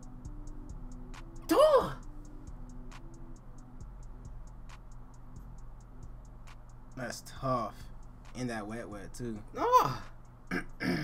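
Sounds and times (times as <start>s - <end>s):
light ticking hi-hat beat: 0.0s - 11.0s.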